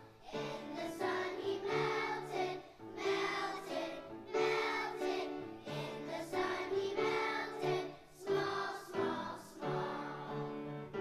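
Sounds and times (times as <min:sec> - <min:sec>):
children's choir singing: 0:00.0 - 0:11.0.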